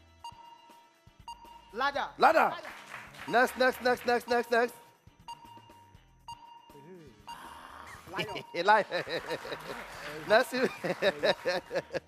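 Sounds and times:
quiet background music: 0.0s - 12.0s
faint electronic beeps: 0.2s - 1.8s, 4.2s - 8.9s.

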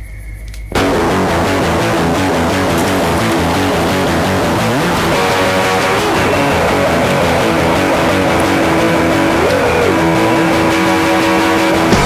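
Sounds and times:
distorted electric guitar drone: 0.7s - 12.0s.

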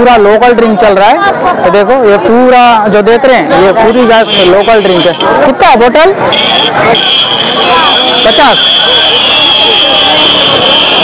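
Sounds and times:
chatter of many voices: 0.0s - 11.0s
high-pitched buzzing tone: 6.2s - 11.0s.

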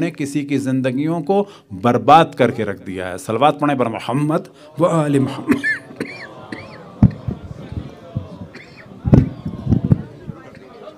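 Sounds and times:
low indistinct voices: 4.6s - 10.9s.

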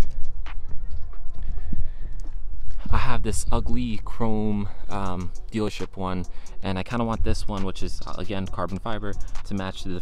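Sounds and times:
footsteps on asphalt: 0.0s - 4.1s.

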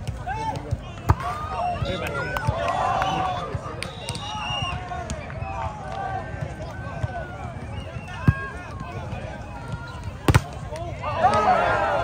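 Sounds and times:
players and spectators calling out: 0.1s - 12.0s
volleyball slap: 10.1s - 11.5s.

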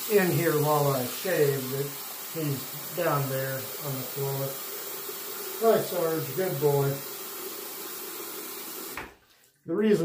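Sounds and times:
tap running into sink: 8.8s - 9.2s.

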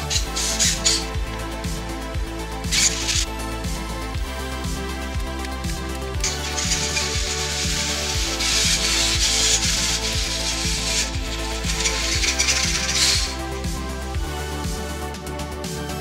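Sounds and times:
loud hissing noise: 0.0s - 1.2s, 2.7s - 3.2s, 6.2s - 13.6s
electronic music with steady beat: 0.0s - 16.0s.

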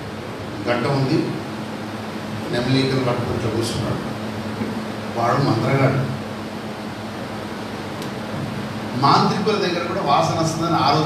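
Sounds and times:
low even hum: 0.0s - 11.0s.

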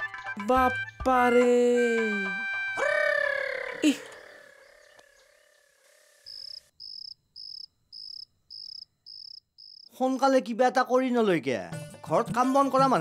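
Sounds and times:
high cricket chirps: 3.0s - 10.0s.

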